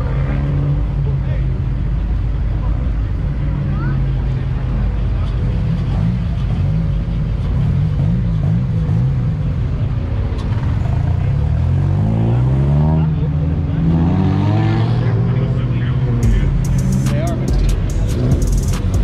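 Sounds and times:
sports car engines passing: 0.0 - 19.0
engine revving: 3.2 - 19.0.

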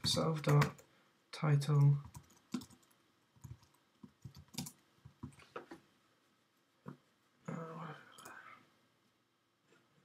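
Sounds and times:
typing on computer keyboard: 2.0 - 5.4.

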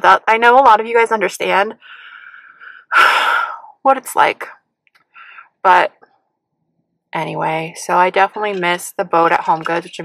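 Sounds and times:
woman speaking: 0.0 - 1.9, 3.0 - 4.6, 5.6 - 5.9, 7.2 - 10.0
woman breathing in: 1.8 - 3.7, 5.1 - 5.6.

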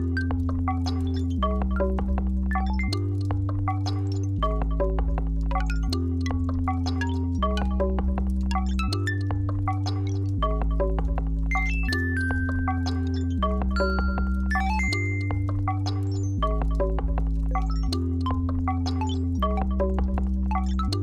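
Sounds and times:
bell-like plucked synth notes: 0.0 - 21.0.

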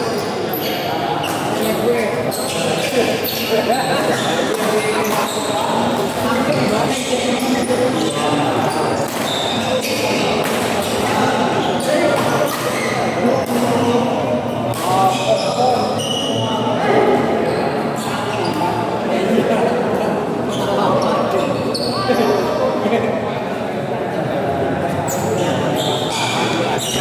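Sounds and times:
voices talking: 0.0 - 27.0.

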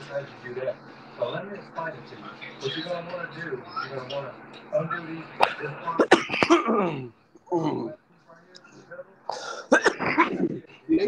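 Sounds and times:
man speaking: 0.0 - 8.0
sharp hacking coughs: 5.4 - 7.1, 9.5 - 10.5
man clearing his throat: 6.0 - 7.1, 9.4 - 10.6.

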